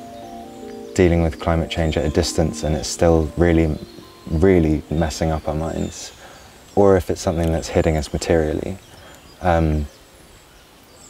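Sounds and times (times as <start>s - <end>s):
faint outdoor background: 0.0s - 11.0s
man saying um: 1.0s - 6.2s, 9.4s - 9.9s.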